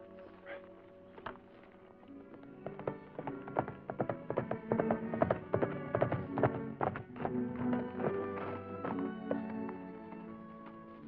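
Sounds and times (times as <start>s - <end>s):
film music with held notes: 0.0s - 11.0s
horse galloping hoofbeats: 0.4s - 11.0s.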